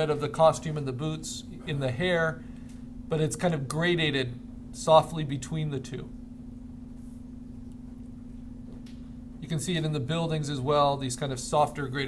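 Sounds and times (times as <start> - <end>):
low electrical hum: 0.0 - 12.0.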